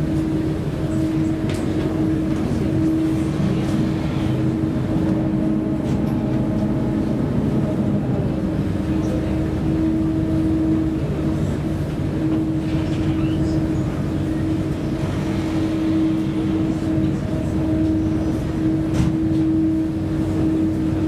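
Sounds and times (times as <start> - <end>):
ship engines droning: 0.0 - 21.0.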